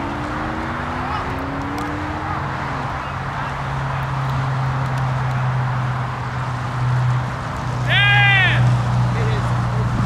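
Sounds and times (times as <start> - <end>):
low engine hum: 0.0 - 10.0
outdoor background noise: 0.0 - 10.0.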